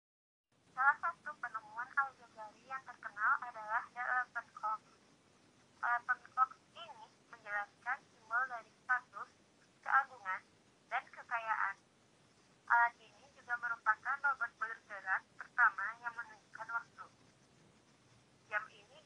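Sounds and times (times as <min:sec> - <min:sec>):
person talking: 0:00.8 - 0:04.9, 0:05.8 - 0:11.8, 0:12.7 - 0:17.2, 0:18.5 - 0:19.0.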